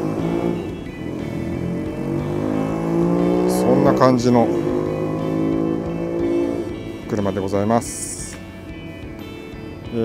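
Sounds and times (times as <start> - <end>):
vehicle engine accelerating: 0.0 - 9.8.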